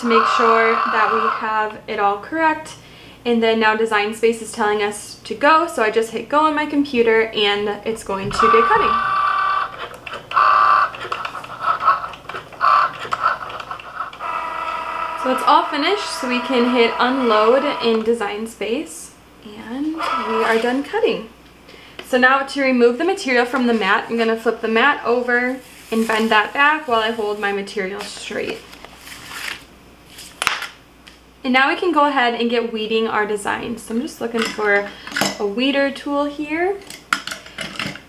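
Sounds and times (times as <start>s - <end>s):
cutting machine motors whirring: 0.0s - 1.8s, 8.1s - 18.1s, 20.0s - 20.8s
cutting mat peeling rustle: 28.5s - 30.5s.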